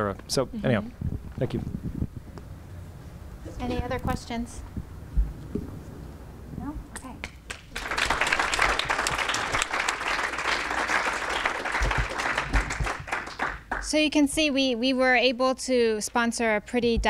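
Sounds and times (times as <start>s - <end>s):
audience applauding: 7.5s - 14.0s.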